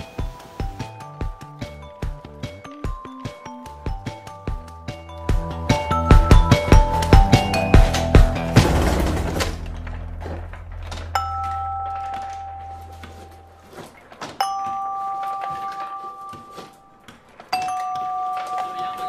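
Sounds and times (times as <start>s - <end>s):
background music: 0.0s - 17.0s
bell-like chime strikes: 10.9s - 13.7s.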